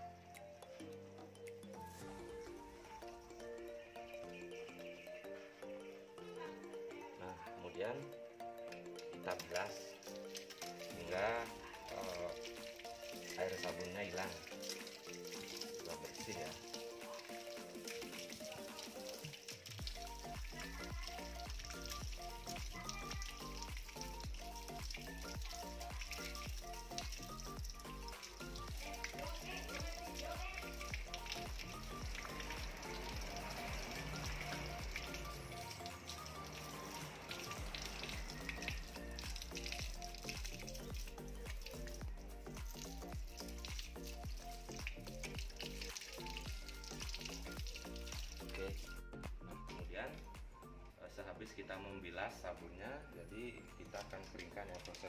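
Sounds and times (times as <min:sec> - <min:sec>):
background music with steady bass: 0:00.0 - 0:55.0
water from hose splashing: 0:09.0 - 0:50.4, 0:53.7 - 0:55.0.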